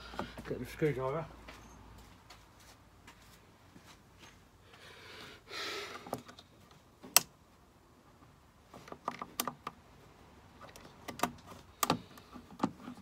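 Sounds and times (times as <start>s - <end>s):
plastic clicks and scrapes: 10.6s - 13.0s.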